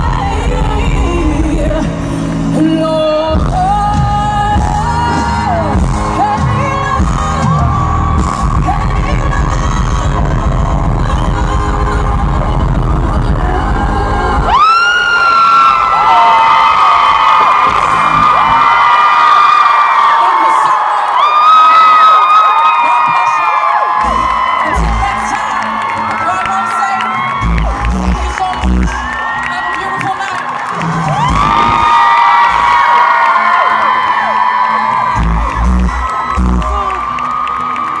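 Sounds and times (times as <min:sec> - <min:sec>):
live band with heavy bass: 0:00.0 - 0:14.8, 0:17.2 - 0:19.1, 0:23.9 - 0:25.6, 0:30.7 - 0:33.9, 0:34.9 - 0:37.2
crowd cheering and whooping: 0:02.6 - 0:38.0.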